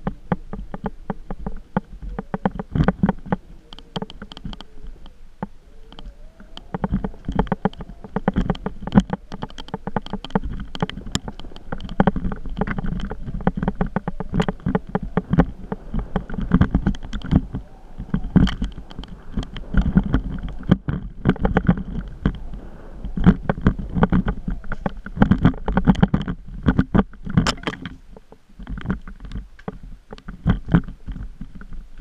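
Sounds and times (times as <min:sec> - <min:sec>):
camera rattling and knocking: 0:00.0 - 0:32.0
low microphone rumble: 0:00.0 - 0:32.0.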